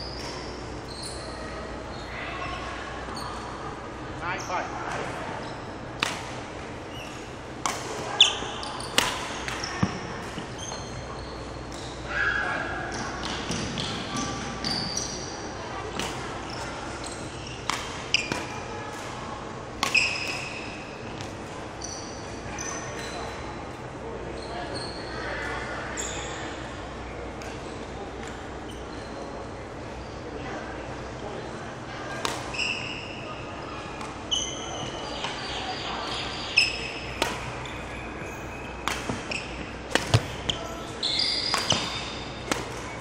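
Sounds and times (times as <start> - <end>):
sneakers squeaking on wooden court: 0.0 - 2.4, 3.2 - 3.5, 8.1 - 12.1, 12.9 - 15.3, 16.4 - 18.6, 19.8 - 20.8, 24.4 - 25.3, 34.3 - 43.0
rackets striking shuttlecock: 6.0 - 6.6, 7.6 - 8.1, 8.8 - 10.4, 17.6 - 19.2, 19.8 - 21.4, 37.1 - 37.9, 38.8 - 40.7, 41.4 - 43.0.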